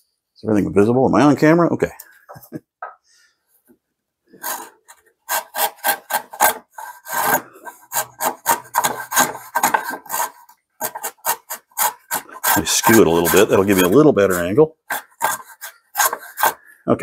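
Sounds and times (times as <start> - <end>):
hand plane scraping end grain: 4.4 - 16.7.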